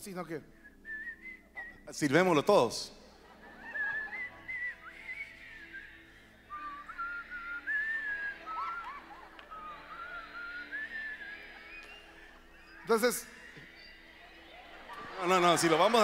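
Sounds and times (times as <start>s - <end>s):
congregation whistling a melody: 0.2s - 16.0s.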